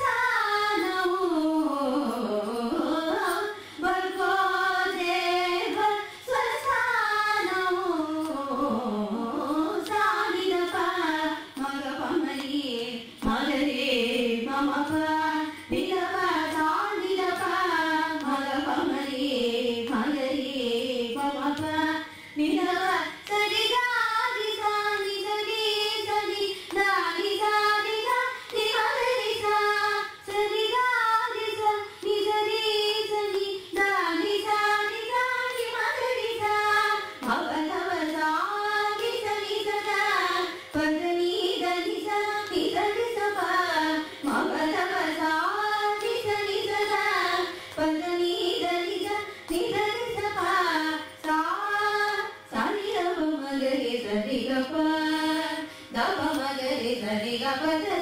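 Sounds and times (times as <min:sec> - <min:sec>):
women singing together: 0:00.0 - 0:58.0.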